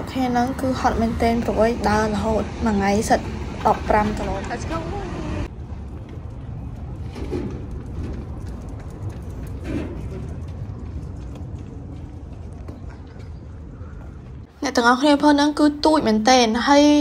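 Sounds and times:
steady low rumble: 0.0s - 15.0s
footsteps on cobblestones: 0.1s - 14.6s.

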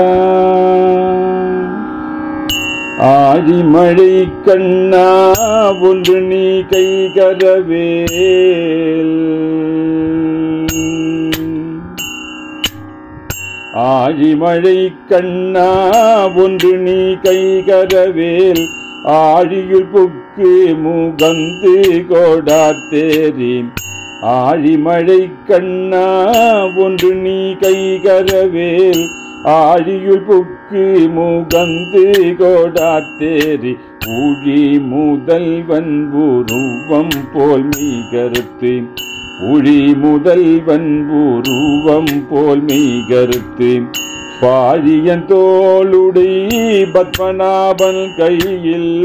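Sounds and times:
person singing long notes: 0.0s - 12.2s, 13.7s - 49.0s
steady drone: 0.0s - 49.0s
hand cymbals striking: 2.4s - 4.2s, 4.9s - 9.0s, 9.9s - 14.2s, 15.6s - 19.9s, 21.2s - 25.1s, 25.9s - 30.2s, 30.8s - 40.7s, 41.3s - 49.0s.

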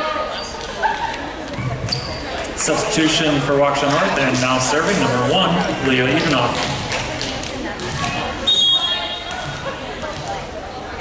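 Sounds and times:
voices echoing in a hall: 0.0s - 11.0s
referee's whistle blast: 8.5s - 9.2s.

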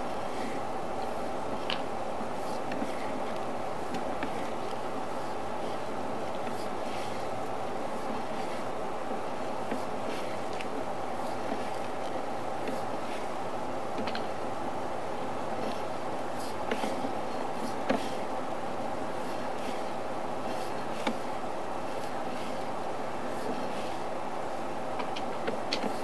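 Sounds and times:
mechanical rumble and hiss: 0.0s - 26.0s.

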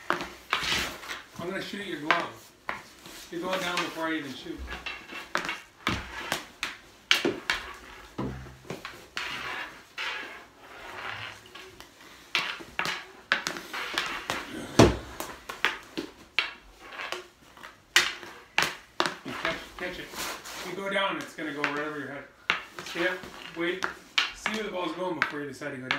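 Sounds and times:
hockey sticks and balls clacking: 0.0s - 25.9s.

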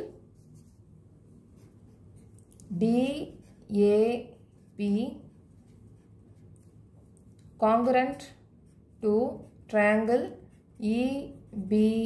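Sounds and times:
person speaking: 1.6s - 5.4s, 7.5s - 12.0s
pen writing on paper: 1.6s - 6.8s, 8.2s - 12.0s.

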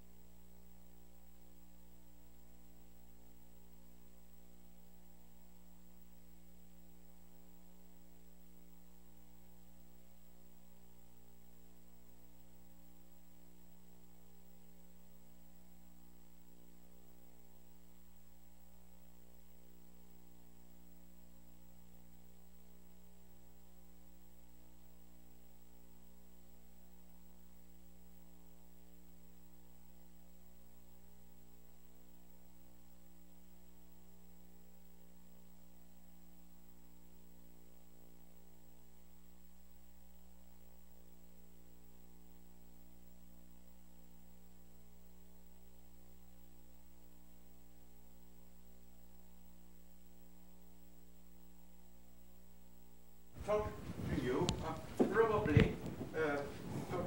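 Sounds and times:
electrical mains hum: 0.0s - 57.0s.

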